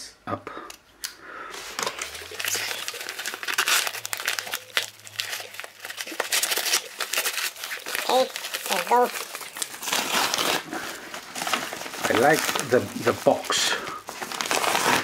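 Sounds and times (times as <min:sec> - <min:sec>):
bubble envelope crinkling and tearing: 0:01.5 - 0:15.0
person speaking: 0:01.6 - 0:03.1, 0:07.9 - 0:09.5, 0:12.0 - 0:14.0.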